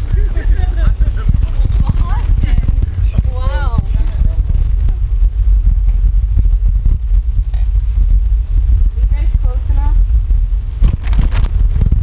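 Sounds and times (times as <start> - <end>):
wind rumble on microphone: 0.0 - 12.0
bicycle knocks and rattles: 0.1 - 8.2, 10.8 - 12.0.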